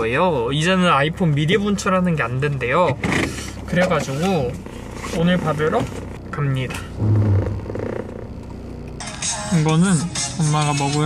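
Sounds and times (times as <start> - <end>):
low fart-like rasp: 4.1 - 9.0.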